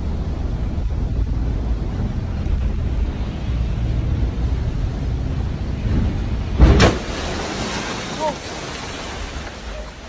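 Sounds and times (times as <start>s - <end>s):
wind and sea rumble: 0.0s - 10.0s.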